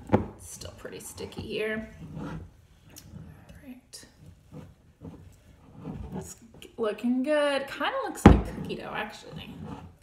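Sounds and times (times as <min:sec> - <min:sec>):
spatula scraping sticky mixture: 0:00.0 - 0:07.3, 0:08.2 - 0:10.0.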